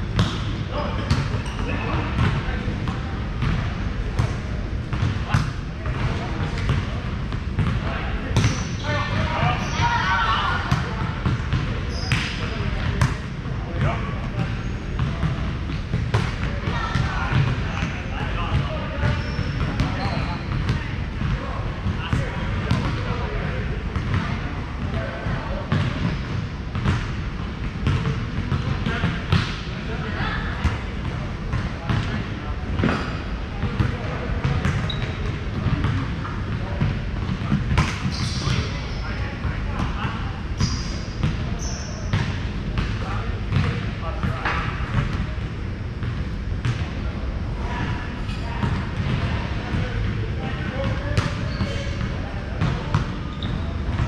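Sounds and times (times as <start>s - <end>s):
low hum of hall: 0.0s - 54.0s
volleyballs slapping on gym floor: 33.6s - 38.6s.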